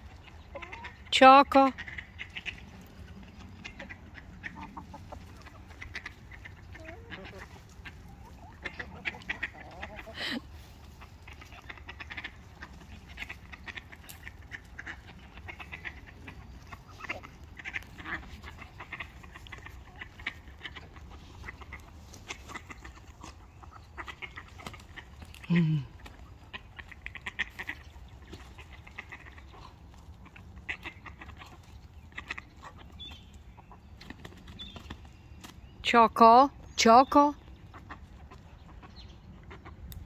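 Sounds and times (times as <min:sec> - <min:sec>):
hens clucking: 0:00.0 - 0:40.0.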